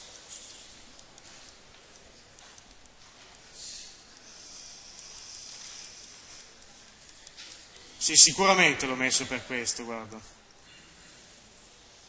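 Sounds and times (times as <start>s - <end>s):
stylus scratching and tapping a screen: 0.0s - 10.6s
steady hiss: 0.0s - 12.0s.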